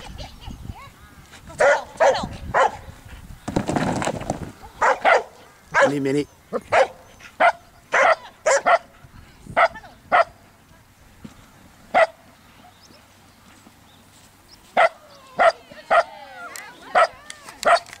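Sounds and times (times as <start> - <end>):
dog barking: 1.6 - 2.8, 4.8 - 6.0, 6.7 - 8.9, 9.6 - 10.4, 12.0 - 12.2, 14.8 - 16.1, 16.9 - 17.9.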